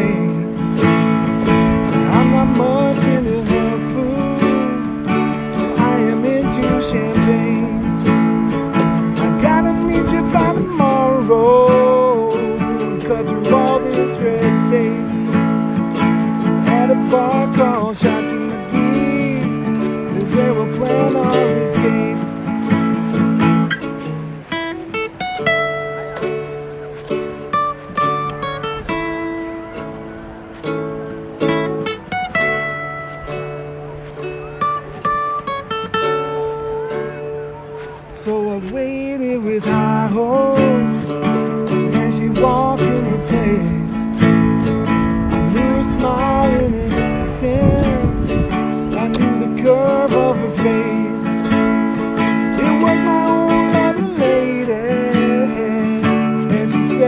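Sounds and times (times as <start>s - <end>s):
acoustic guitar: 0.0s - 57.0s
ukulele: 0.0s - 57.0s.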